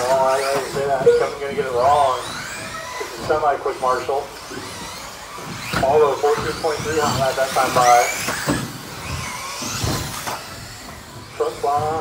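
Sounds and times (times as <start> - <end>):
electric rc car motors whining: 0.0 - 12.0.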